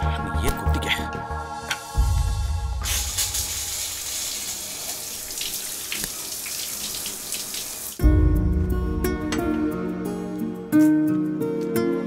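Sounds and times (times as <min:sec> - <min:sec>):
shower head spraying water: 0:02.8 - 0:08.0.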